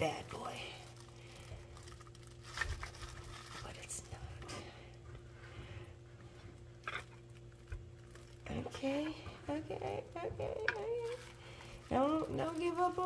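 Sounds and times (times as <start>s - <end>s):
plastic gloves rustling: 0.0s - 13.0s
steady low hum: 0.0s - 13.0s.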